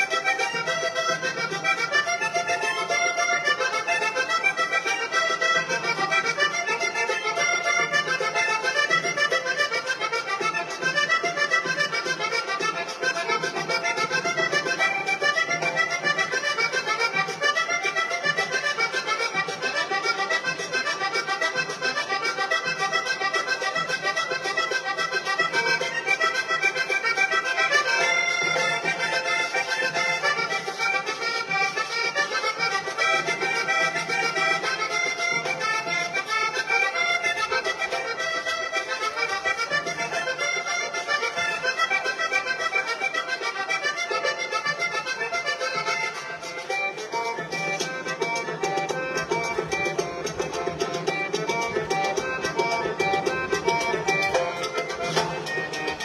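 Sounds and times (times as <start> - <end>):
button accordion melody: 0.0 - 56.0
hand drum: 0.0 - 56.0
scraped percussion: 0.0 - 56.0.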